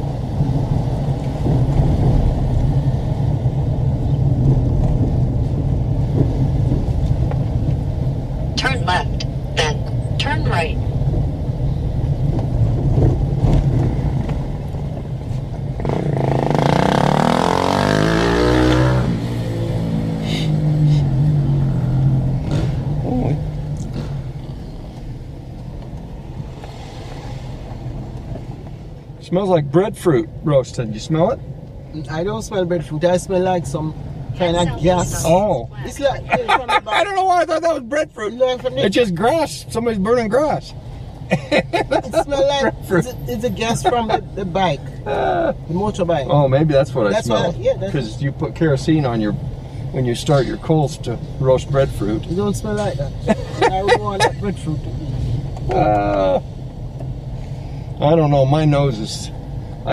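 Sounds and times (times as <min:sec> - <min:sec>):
car engine and road hum: 0:00.0 - 0:59.9
motorcycle passing by: 0:15.8 - 0:25.0.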